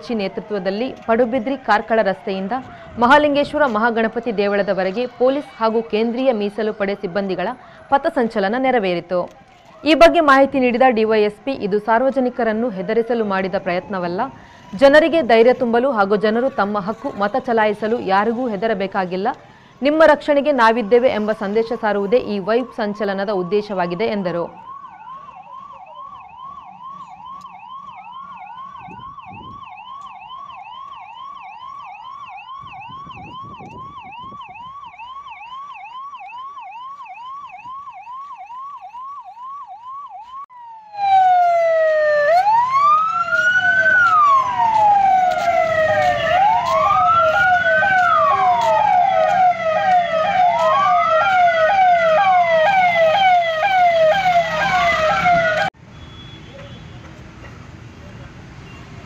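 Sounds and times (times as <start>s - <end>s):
siren wailing: 0.0s - 55.7s
siren yelping: 0.0s - 55.7s.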